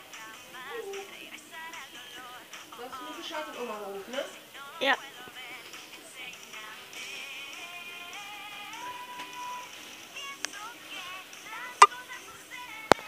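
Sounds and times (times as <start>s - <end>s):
girls singing pop song: 0.0s - 13.0s.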